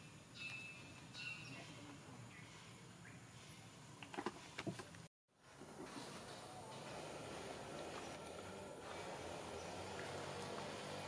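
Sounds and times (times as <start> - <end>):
faint outdoor background noise: 0.0 - 11.0.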